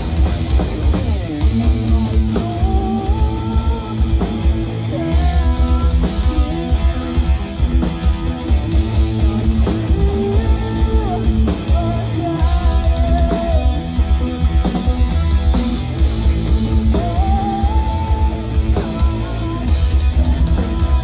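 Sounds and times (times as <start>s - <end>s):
bass guitar: 0.0s - 21.0s
drum kit: 0.0s - 21.0s
electric guitar: 0.0s - 21.0s.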